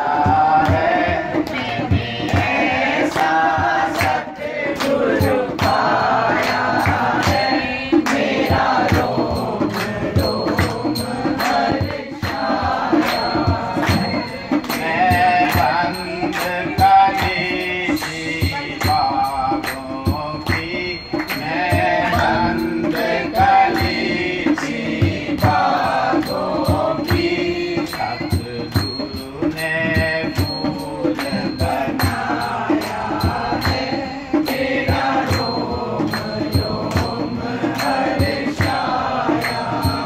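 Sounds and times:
held accompanying tones: 0.0s - 40.0s
man singing devotional song: 0.0s - 40.0s
hand claps: 0.2s - 40.0s.

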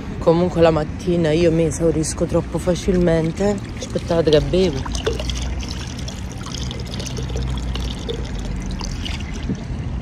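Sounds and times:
wind rumble on microphone: 4.6s - 10.0s
person drinking: 4.8s - 9.7s.

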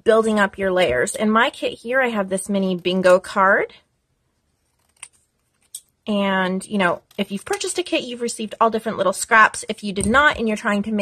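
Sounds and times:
scissors snipping paper: 6.8s - 8.7s.

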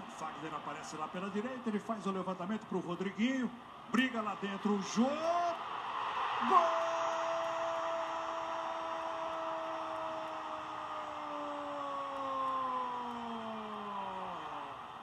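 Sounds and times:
crowd noise: 0.0s - 15.0s.

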